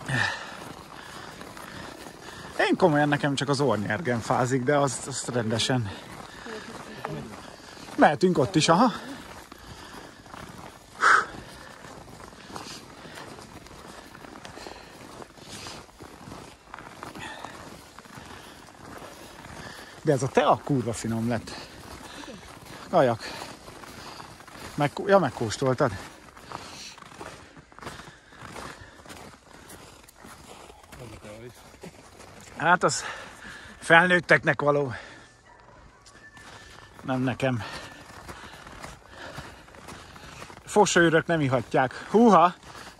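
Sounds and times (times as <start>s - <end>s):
footsteps crunching on snow: 0.0s - 42.9s.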